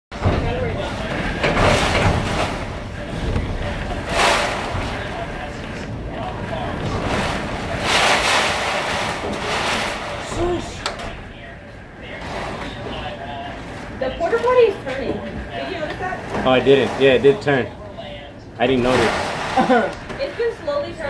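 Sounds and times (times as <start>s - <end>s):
gusting wind: 0.1s - 12.1s
driving rain: 0.1s - 14.8s.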